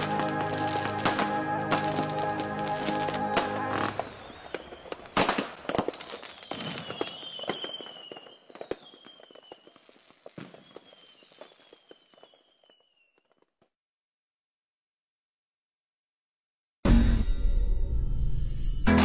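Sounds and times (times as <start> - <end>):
fireworks crackling and popping: 0.0 - 13.7
high descending whistle: 6.1 - 9.6.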